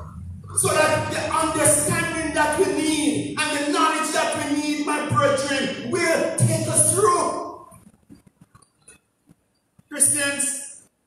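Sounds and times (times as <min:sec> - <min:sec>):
man speaking into a microphone: 0:00.5 - 0:07.6, 0:09.9 - 0:10.8.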